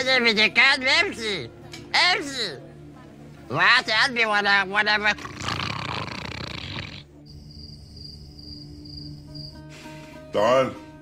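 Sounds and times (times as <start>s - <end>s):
man's hoarse rasping vocal noise: 5.1s - 7.1s
night insects chirping: 6.6s - 10.2s.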